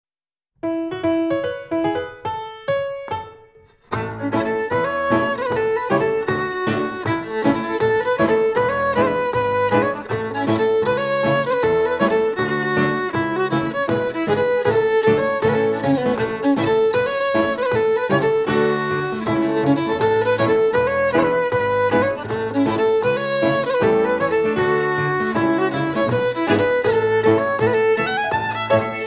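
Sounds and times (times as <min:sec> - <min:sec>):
piano chords: 0:00.6 - 0:29.0
fiddle playing a march: 0:03.9 - 0:29.0.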